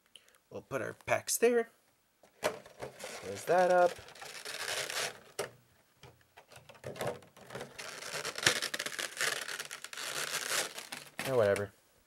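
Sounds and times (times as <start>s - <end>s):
cardboard packs crinkling and rustling: 2.5s - 5.5s, 6.6s - 11.7s.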